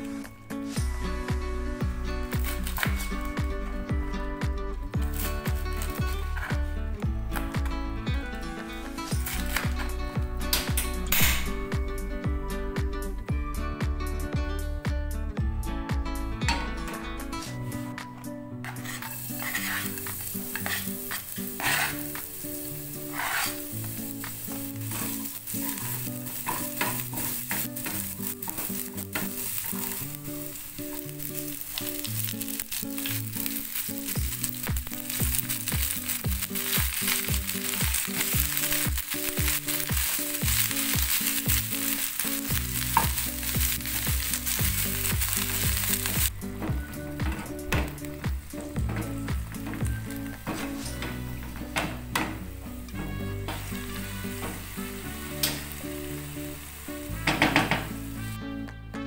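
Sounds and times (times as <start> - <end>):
garlic sizzling in oil: 1.8 - 3.8, 5.0 - 6.6, 8.6 - 10.0, 18.7 - 58.4
spatula scraping a pan: 18.6 - 30.1.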